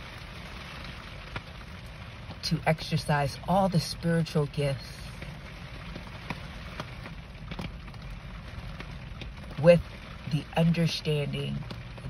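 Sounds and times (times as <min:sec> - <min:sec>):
rain on car windshield: 0:00.0 - 0:12.0.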